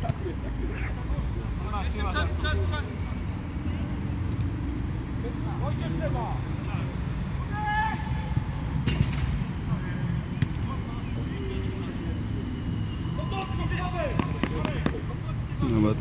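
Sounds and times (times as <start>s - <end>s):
distant players shouting: 5.6s - 12.2s, 12.9s - 15.1s.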